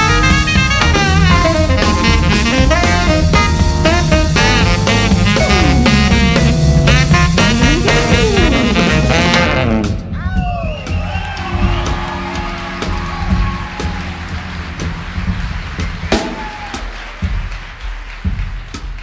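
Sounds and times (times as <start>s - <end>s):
sharp drum strikes: 0.0s - 17.5s
live jazz band playing: 0.0s - 19.0s.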